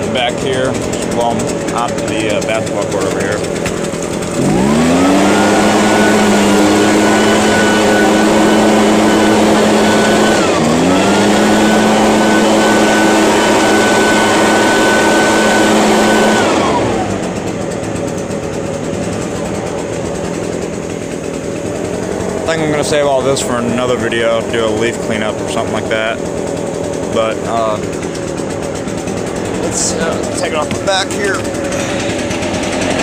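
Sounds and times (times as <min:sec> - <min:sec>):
leaf blower engine running: 0:00.0 - 0:33.0.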